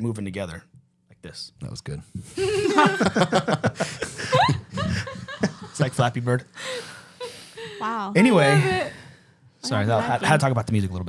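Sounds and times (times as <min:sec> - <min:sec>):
group of adults laughing: 0:02.3 - 0:09.0.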